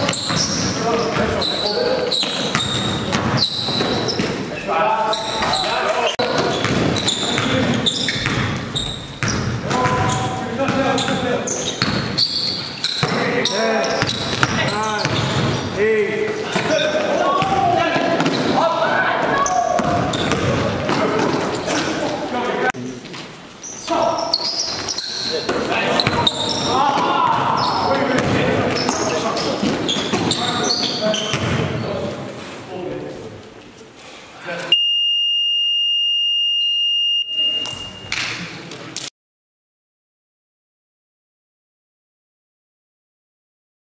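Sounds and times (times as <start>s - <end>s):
basketball bouncing on gym floor: 0.0s - 4.4s, 6.2s - 11.2s, 13.9s - 15.6s, 19.7s - 21.4s, 28.1s - 30.5s, 31.2s - 31.8s
voices in a hall: 0.0s - 34.8s
scoreboard buzzer tone: 34.7s - 38.0s.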